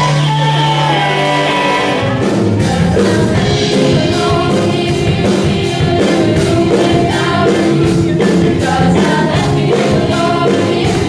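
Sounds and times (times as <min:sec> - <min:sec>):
group singing: 0:00.0 - 0:11.0
live pop band: 0:00.0 - 0:11.0.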